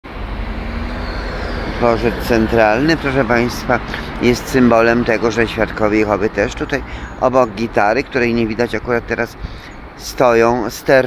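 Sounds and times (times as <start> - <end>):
city street traffic rumble: 0.0 - 11.0
man's voice: 1.8 - 9.4, 10.0 - 11.0.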